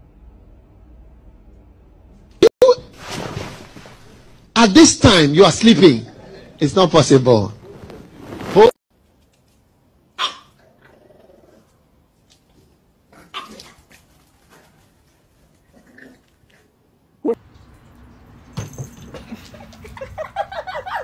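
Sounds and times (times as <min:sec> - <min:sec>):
dog barking: 0:10.2 - 0:10.5.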